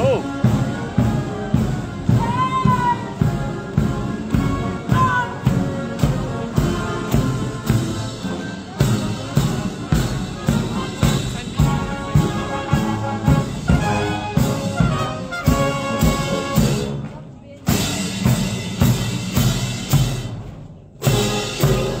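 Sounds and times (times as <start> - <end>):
drum beat: 0.0 - 17.0
military brass band playing a march: 0.0 - 22.0.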